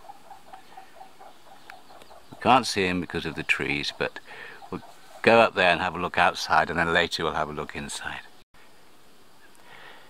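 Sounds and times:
small animal chirping rapidly: 0.0 - 5.5
outdoor background hiss: 0.0 - 10.0.

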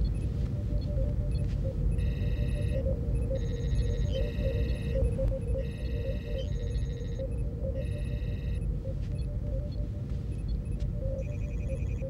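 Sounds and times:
soft computer blips: 0.0 - 12.0
warbling electronic chirps: 0.1 - 9.8.

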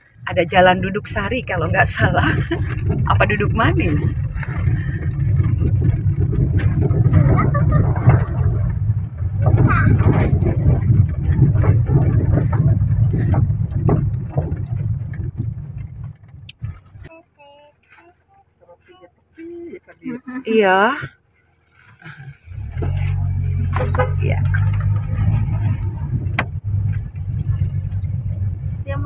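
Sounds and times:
low rumble inside a car: 0.0 - 29.0
scattered knocks: 0.4 - 16.8.

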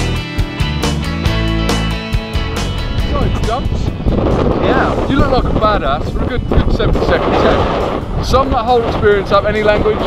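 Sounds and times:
background music: 0.0 - 10.0
wind rumbling on microphone: 2.6 - 10.0
man talking: 3.0 - 3.9, 4.6 - 10.0.

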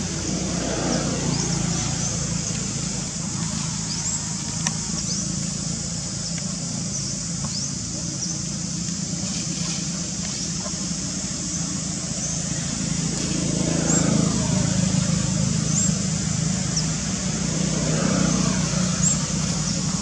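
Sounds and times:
vehicle engine droning: 0.0 - 20.0.

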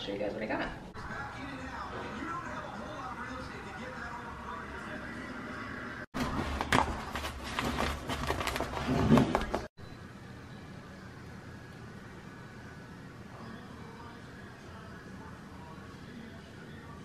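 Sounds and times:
paper mailer crinkling: 6.2 - 9.7.

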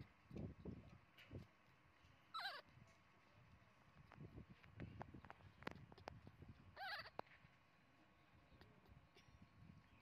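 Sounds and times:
high wavering animal squeak: 2.4 - 2.6, 6.8 - 7.2.

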